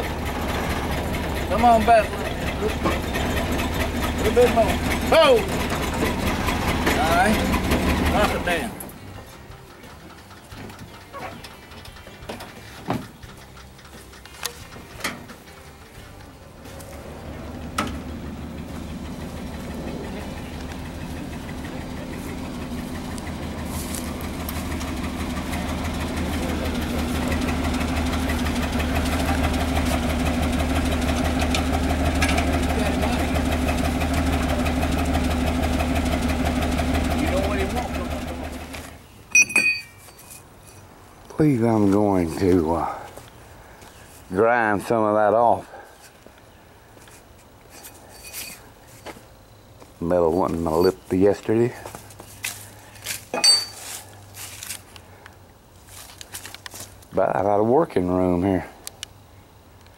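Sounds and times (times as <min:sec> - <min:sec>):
knocks and clatters: 0:00.0 - 0:17.0
engine running: 0:00.0 - 0:59.2.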